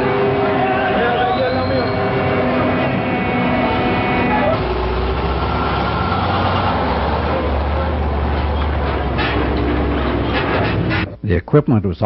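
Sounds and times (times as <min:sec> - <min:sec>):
heavy vehicle engines rumbling: 0:00.0 - 0:11.2.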